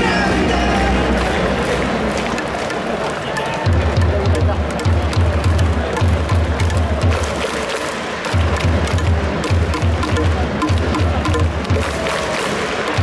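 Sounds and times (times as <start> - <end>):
crowd cheering: 0.0 - 13.0
music with pounding drum beat: 3.6 - 13.0.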